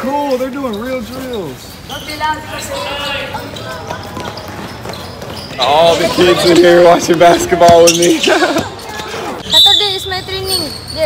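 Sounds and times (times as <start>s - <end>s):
basketball bouncing: 3.6s - 5.6s, 6.4s - 8.7s
footfalls on concrete: 3.8s - 6.3s
children's voices: 8.3s - 11.0s.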